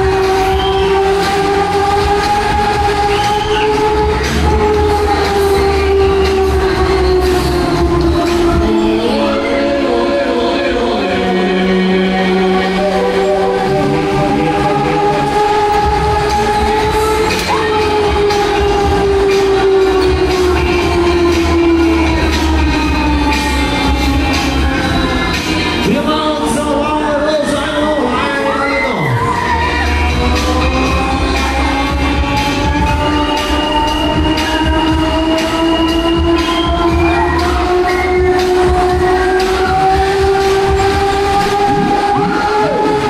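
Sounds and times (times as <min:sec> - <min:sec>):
low pulsing bass: 0:00.0 - 0:28.1, 0:29.2 - 0:43.0
amusement ride drive whine: 0:00.0 - 0:43.0
held synth tone: 0:00.3 - 0:25.0.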